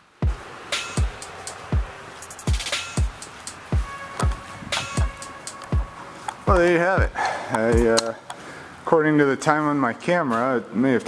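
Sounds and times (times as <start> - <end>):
person speaking: 6.4 - 8.3.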